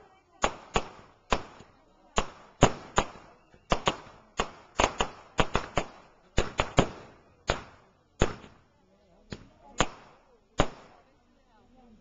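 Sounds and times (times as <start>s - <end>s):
fireworks bangs: 0.4s - 8.6s.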